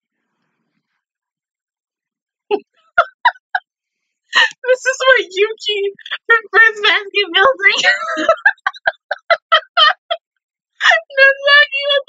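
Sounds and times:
woman laughing: 2.5 - 3.6, 4.4 - 5.2, 6.0 - 10.2, 10.8 - 12.0.

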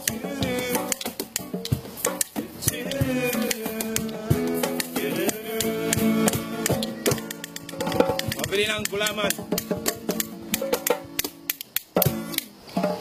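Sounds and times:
person singing: 0.0 - 1.2, 2.5 - 8.5
acoustic guitar strumming: 0.0 - 12.4
hand drum: 0.0 - 13.0.

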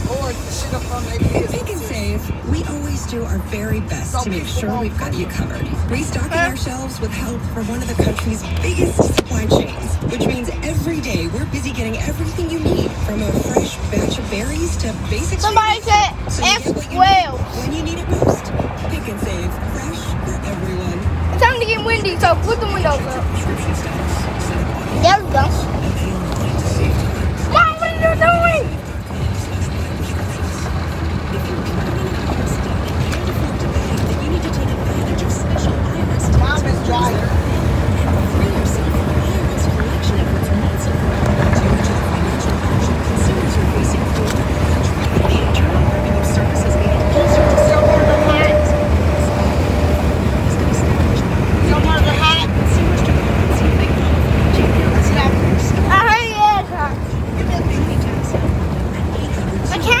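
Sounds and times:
car rumble from inside cabin: 0.0 - 60.0
faint voice: 0.0 - 60.0.

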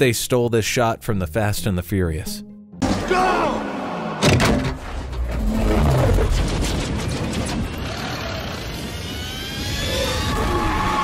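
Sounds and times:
music: 0.8 - 3.6.

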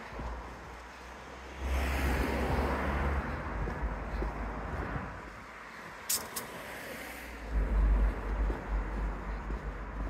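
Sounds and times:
short sharp ticks: 6.1 - 6.5.

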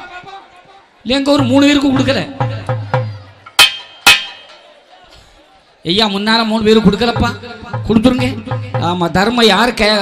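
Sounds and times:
metal percussion clang: 2.7 - 4.7.

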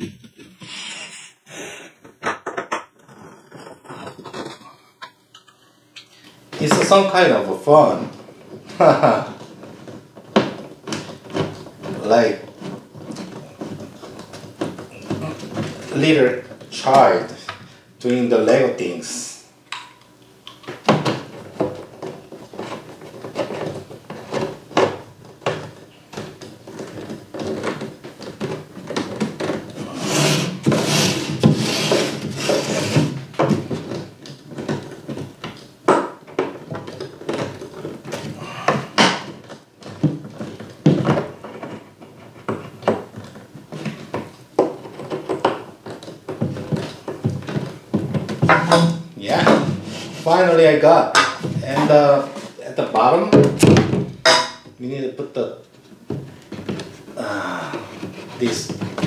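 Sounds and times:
plastic scraping: 0.0 - 19.1, 19.7 - 59.0
plastic parts knocking and clicking: 2.0 - 7.0, 8.1 - 17.6, 19.7 - 29.9, 30.6 - 49.9, 50.9 - 54.9, 55.6 - 59.0.

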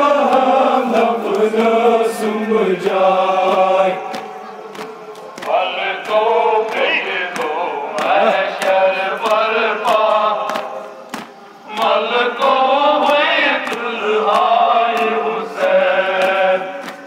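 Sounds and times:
men chanting in unison: 0.0 - 17.0
rhythmic chest-beating slaps: 0.0 - 17.0.

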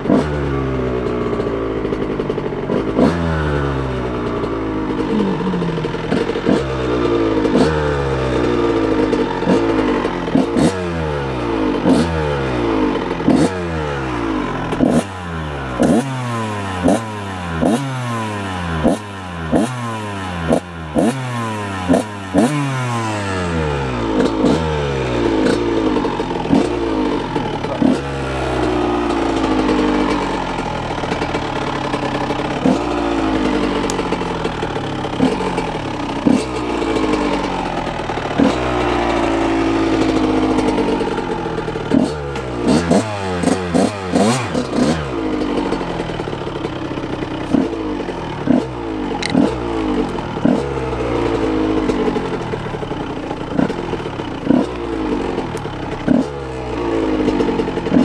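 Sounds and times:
two-stroke engine revving: 0.0 - 58.0.

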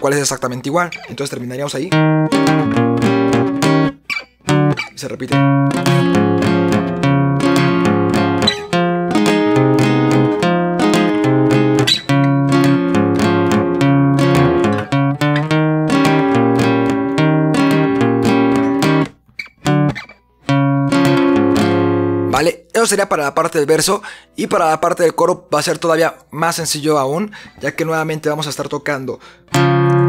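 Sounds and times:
acoustic guitar strumming: 1.9 - 22.4, 29.5 - 30.0.

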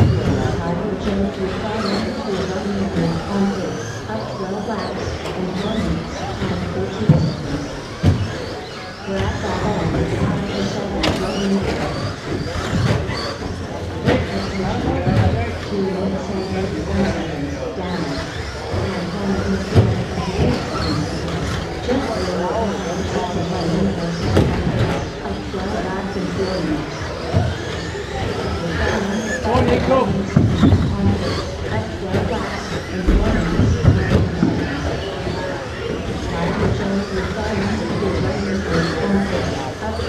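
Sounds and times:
people talking: 0.0 - 40.0
radio-controlled trucks running: 0.0 - 40.0.

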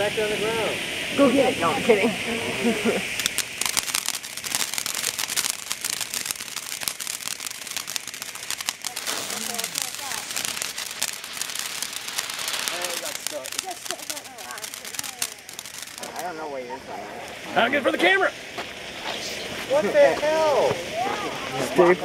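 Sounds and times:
firework fountain hissing: 0.0 - 22.0
firework crackling pops: 2.6 - 22.0.

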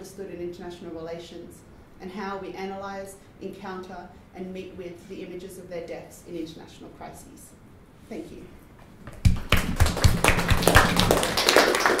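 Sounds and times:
audience applauding: 9.2 - 12.0.

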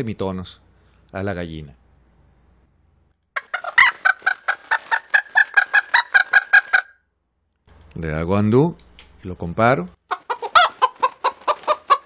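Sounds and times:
pitch-shifted hen clucking: 3.4 - 7.0, 10.1 - 12.0.

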